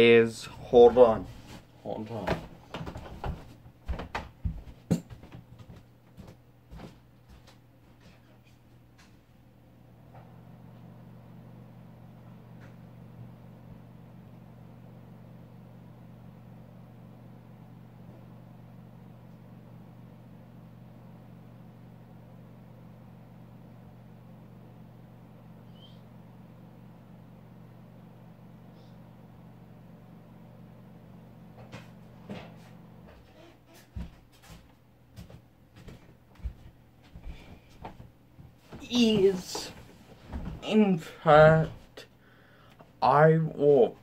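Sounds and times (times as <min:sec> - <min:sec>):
low machine hum: 0:00.0 - 0:44.0.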